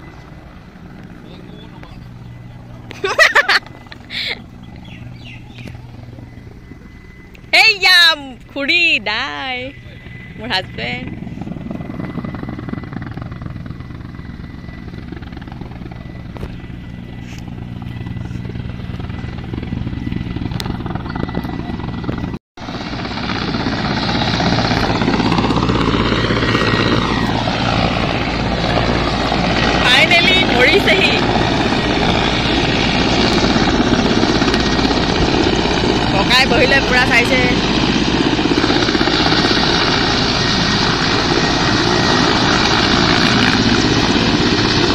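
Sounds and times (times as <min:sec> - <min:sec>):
helicopter rotor and engine drone: 0:00.0 - 0:44.9.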